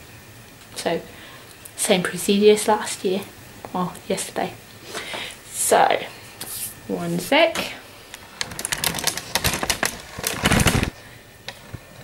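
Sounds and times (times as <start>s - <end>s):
camera and tripod clicks and rattles: 8.4s - 10.9s.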